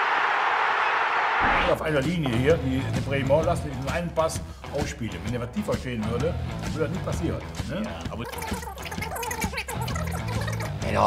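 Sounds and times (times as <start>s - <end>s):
men talking indistinctly: 1.4s - 8.5s, 10.8s - 11.0s
background music: 1.7s - 11.0s.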